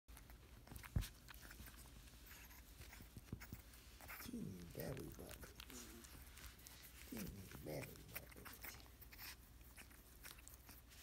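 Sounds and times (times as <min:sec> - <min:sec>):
puppy nibbling clicks and rustles: 0:00.1 - 0:11.0.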